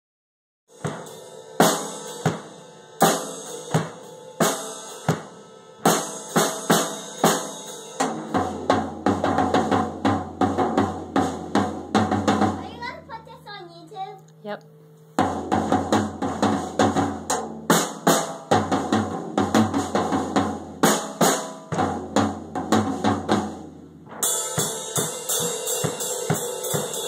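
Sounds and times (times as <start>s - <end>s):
drum kit played with sticks: 0.7s - 13.4s, 15.2s - 27.0s
cymbal crashes: 24.0s - 27.0s.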